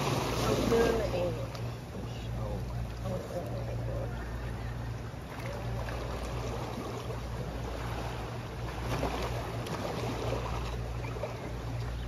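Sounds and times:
ocean waves washing against rocks: 0.0s - 1.3s.

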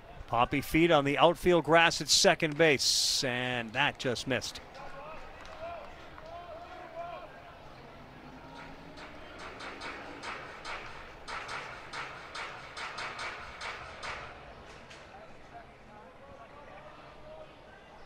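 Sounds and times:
crowd murmur: 4.5s - 11.9s
crowd clapping in unison: 4.6s - 7.1s, 8.5s - 13.8s.

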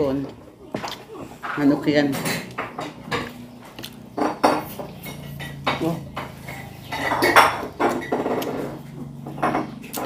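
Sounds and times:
tableware clinking on plate: 1.4s - 3.4s, 4.2s - 8.7s.

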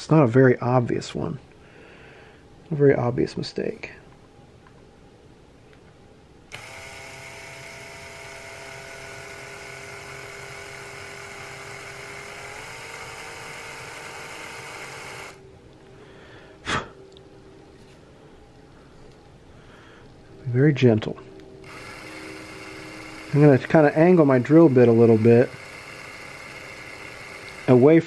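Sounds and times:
small cordless drill running: 6.5s - 15.4s, 21.6s - 28.0s.

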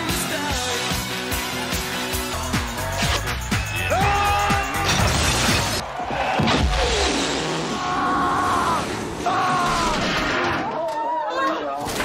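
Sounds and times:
loud music: 0.0s - 5.8s
crash with breaking glass: 4.8s - 5.8s.

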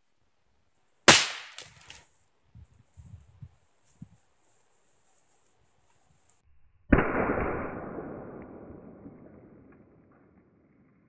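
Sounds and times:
rifle shot: 1.1s - 1.9s, 6.9s - 10.8s.

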